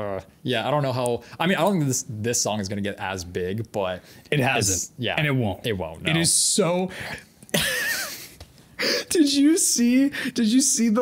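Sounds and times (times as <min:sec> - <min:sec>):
quiet breaths: 0:04.0 - 0:04.3
man laughing: 0:07.5 - 0:09.4.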